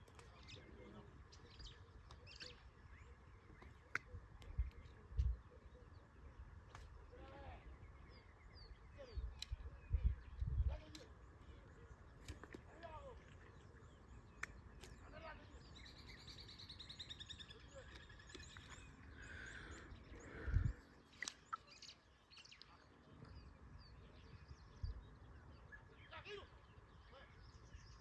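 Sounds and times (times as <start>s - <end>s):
birds chirping and calling: 0.0s - 28.0s
bird trill: 13.4s - 28.0s.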